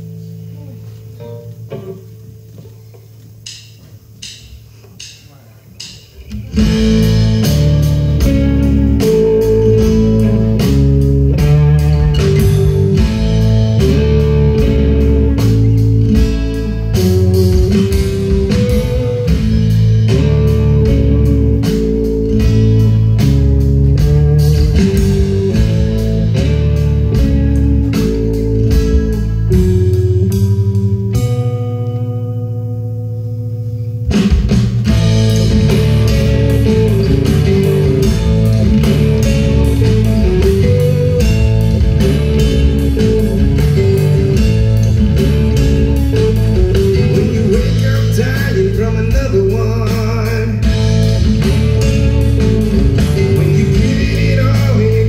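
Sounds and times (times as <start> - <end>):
live guitar song: 0.0 - 55.0
moving low bass notes: 6.3 - 55.0.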